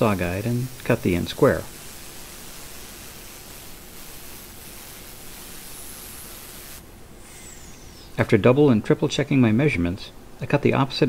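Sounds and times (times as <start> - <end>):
circular saw cutting wood: 7.2 - 8.3.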